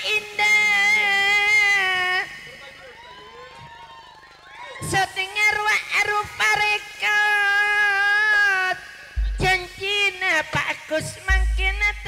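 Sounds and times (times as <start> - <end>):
high voice singing: 6.9 - 12.0.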